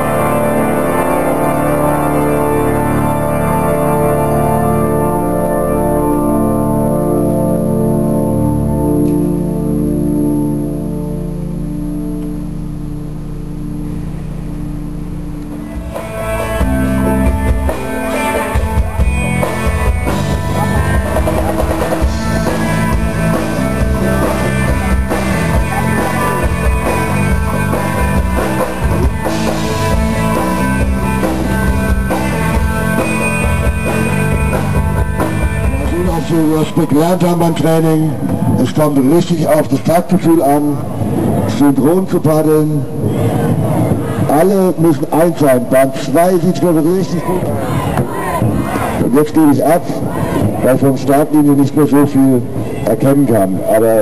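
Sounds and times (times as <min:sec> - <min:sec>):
rock music with drums and guitar: 0:00.0 - 0:13.0, 0:15.2 - 0:41.5
church organ chords: 0:00.0 - 0:43.0.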